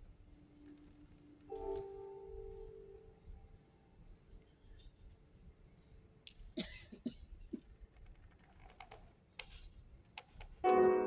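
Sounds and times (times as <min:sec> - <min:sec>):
faint hum of hushed hall: 0:00.0 - 0:11.0.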